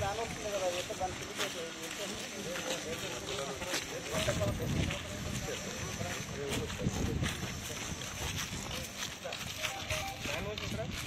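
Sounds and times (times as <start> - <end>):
group of people talking: 0.0 - 11.0
outdoor background noise: 0.0 - 11.0.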